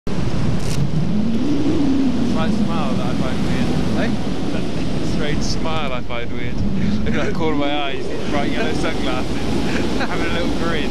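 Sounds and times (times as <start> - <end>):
wind rushing over microphone: 0.1 - 10.9
faint voices: 2.3 - 10.9.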